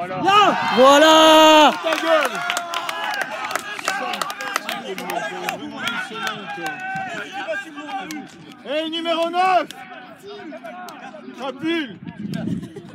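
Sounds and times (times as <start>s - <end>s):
people shouting and calling out: 0.0s - 12.9s.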